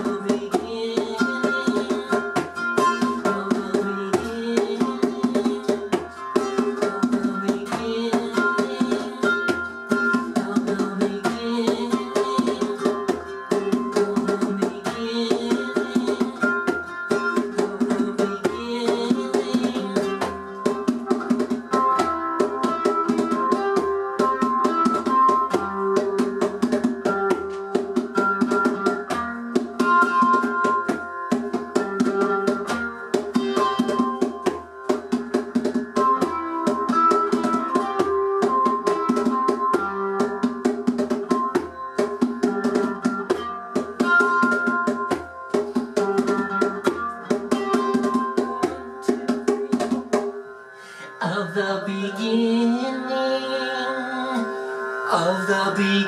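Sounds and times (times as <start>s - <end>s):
ukulele strumming: 0.0s - 50.4s
hand drum beating: 0.0s - 50.5s.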